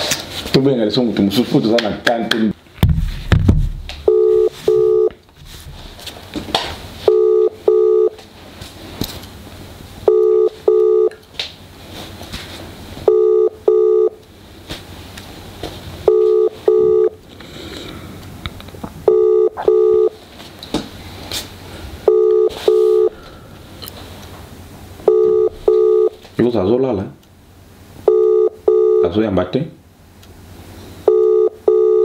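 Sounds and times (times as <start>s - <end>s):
telephone ringback tone: 4.0s - 5.2s, 7.0s - 8.2s, 10.1s - 11.2s, 13.1s - 14.2s, 16.0s - 17.2s, 19.1s - 20.2s, 22.1s - 23.2s, 25.1s - 26.2s, 28.1s - 29.1s, 31.1s - 32.0s.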